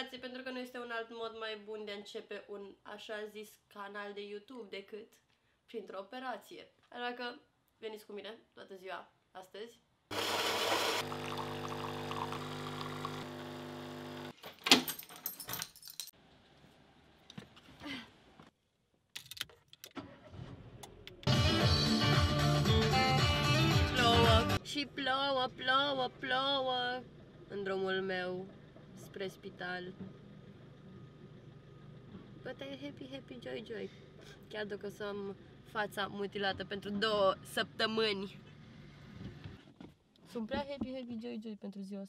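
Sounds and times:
keys jingling: 14.4 - 16.2.

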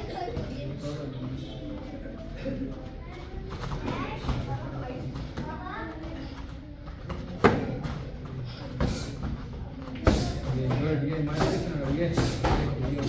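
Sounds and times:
murmur of voices: 0.0 - 13.0.

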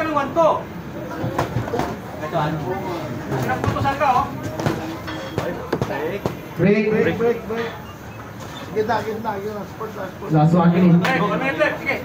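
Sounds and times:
onlookers talking: 0.0 - 12.0.

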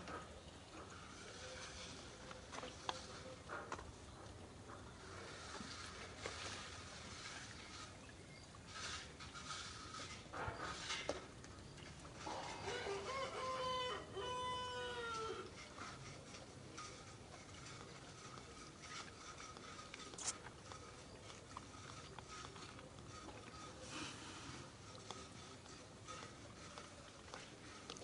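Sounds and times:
rooster crowing: 12.6 - 15.4.

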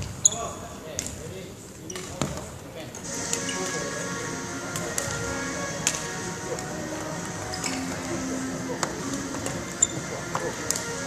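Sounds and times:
background voices: 3.1 - 11.0.

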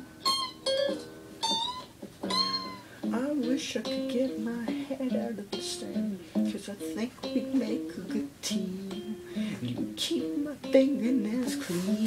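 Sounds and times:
guitar chord ringing: 0.0 - 11.2.

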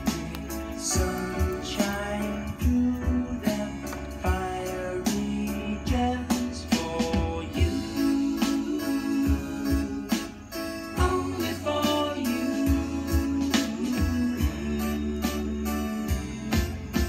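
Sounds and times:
music with steady beat: 0.0 - 17.0.

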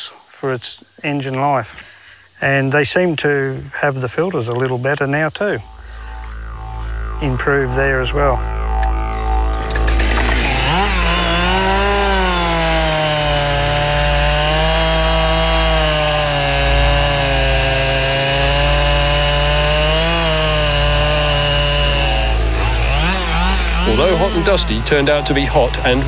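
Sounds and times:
chainsaw cutting through log: 8.7 - 26.0.

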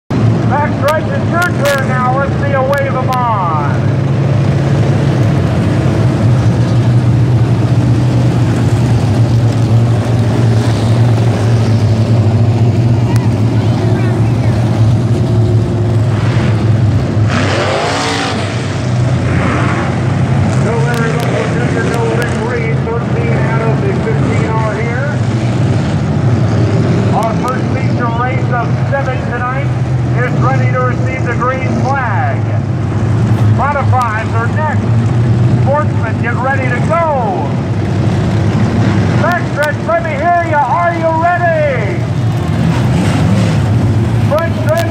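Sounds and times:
race car engines droning: 0.1 - 44.9.

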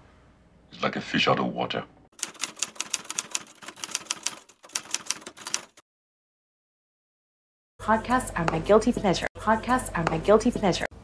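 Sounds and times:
typewriter keys clacking: 2.2 - 5.8.

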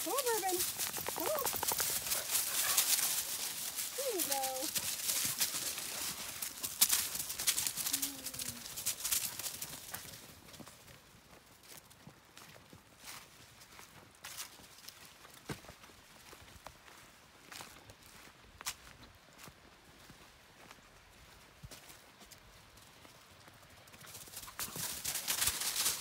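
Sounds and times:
footsteps crunching dry leaves: 0.0 - 10.2, 24.8 - 26.0.

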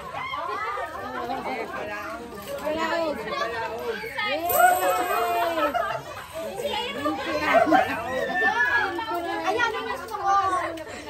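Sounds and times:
adults and children chattering: 0.0 - 11.0.

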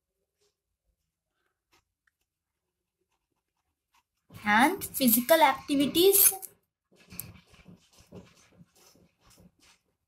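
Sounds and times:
pen scratching on paper: 7.0 - 10.0.

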